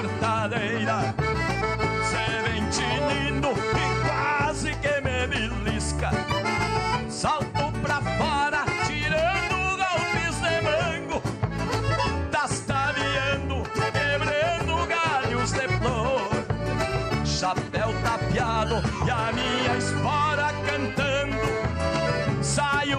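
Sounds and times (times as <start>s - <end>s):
accordion melody: 0.0s - 22.9s
acoustic guitars: 0.0s - 22.9s
bass drum beat: 0.0s - 22.9s.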